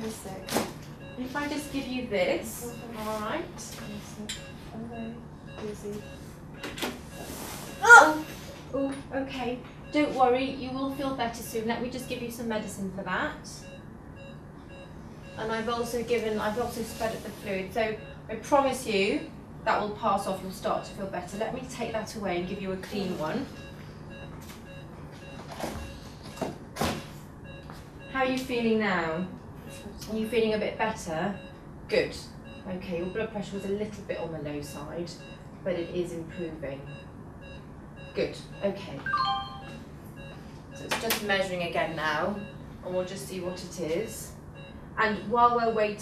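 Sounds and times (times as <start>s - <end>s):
patient monitor beeping: 0.0s - 46.0s
woman gagging cry: 7.8s - 8.2s.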